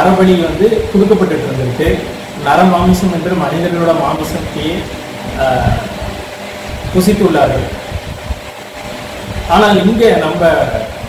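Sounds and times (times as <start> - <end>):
man speaking: 0.0 - 6.1, 9.5 - 11.0
low background hum: 0.0 - 11.0.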